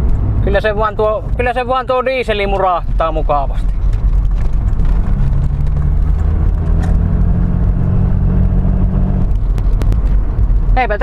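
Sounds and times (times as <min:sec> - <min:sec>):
diesel engine rumble in cabin: 0:00.0 - 0:11.0.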